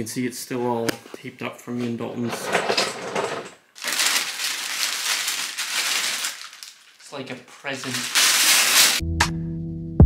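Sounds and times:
plastic wrapping crinkling: 0:03.7 - 0:09.0
tape being pulled off: 0:07.9 - 0:09.0.

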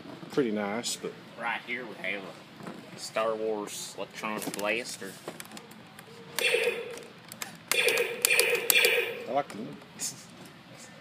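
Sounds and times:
toy blaster sound effects: 0:06.4 - 0:07.1, 0:07.7 - 0:09.4.

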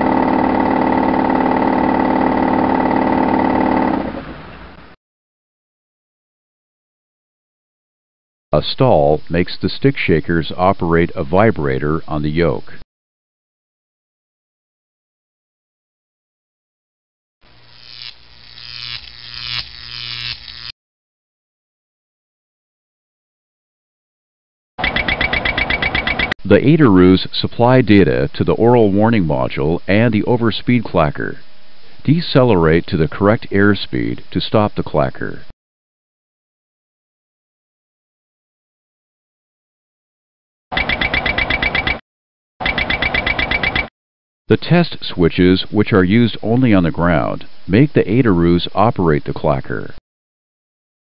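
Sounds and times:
mechanical buzzing warning rattle: 0:00.0 - 0:04.1, 0:17.5 - 0:20.7.

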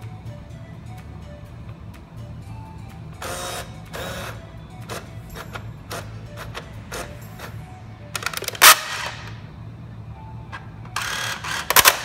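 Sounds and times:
coin changer mechanism whirring: 0:00.0 - 0:12.0
sharp mechanical clicks: 0:08.2 - 0:09.4, 0:11.0 - 0:12.0.

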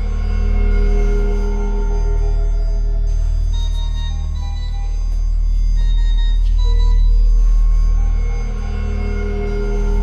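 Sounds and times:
deep low drone: 0:00.0 - 0:10.0.

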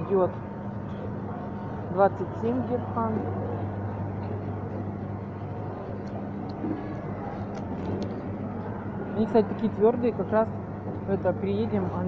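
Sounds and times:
steady low hum: 0:00.0 - 0:12.0
supermarket background noise: 0:00.0 - 0:12.0.

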